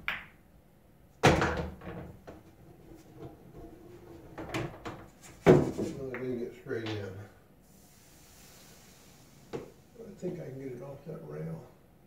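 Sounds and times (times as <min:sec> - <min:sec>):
ball rolling down return channel: 0:01.4 - 0:05.2.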